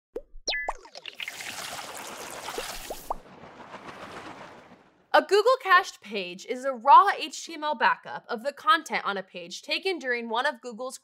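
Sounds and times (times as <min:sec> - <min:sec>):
quick rising pops: 0:01.9 - 0:05.1.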